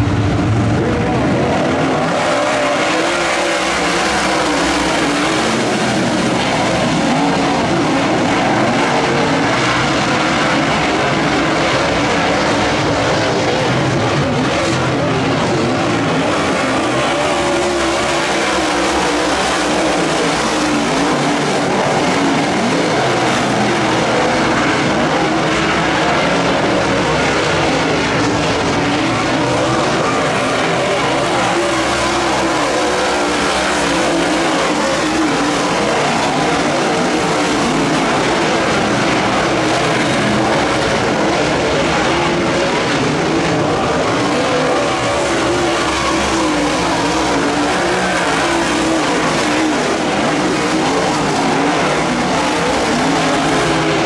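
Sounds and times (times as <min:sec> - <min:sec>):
race car engines roaring: 0:00.0 - 0:54.0.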